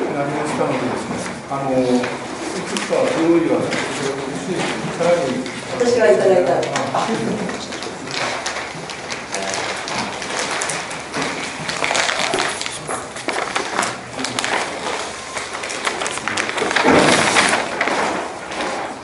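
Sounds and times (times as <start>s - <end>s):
papers rustling and tapping: 0.0s - 19.0s
people moving about: 0.0s - 19.0s.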